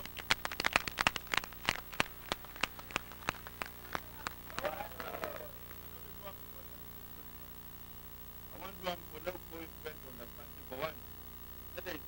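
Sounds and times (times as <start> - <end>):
scattered handclaps: 0.0 - 6.0.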